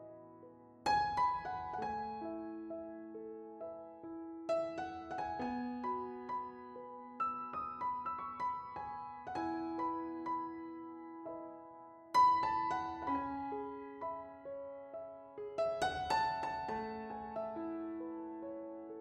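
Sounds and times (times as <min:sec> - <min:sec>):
soft piano music: 0:00.0 - 0:19.0.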